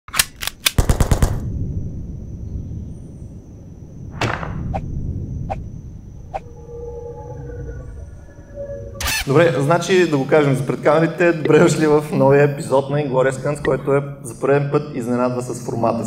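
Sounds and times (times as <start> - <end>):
sharp gunshots: 0.6 - 1.5
machine gun fire: 0.8 - 1.5
low rumble: 1.2 - 13.7.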